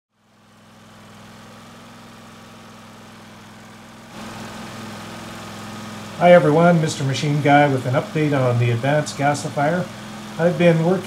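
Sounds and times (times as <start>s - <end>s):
small generator engine running: 0.1s - 11.0s.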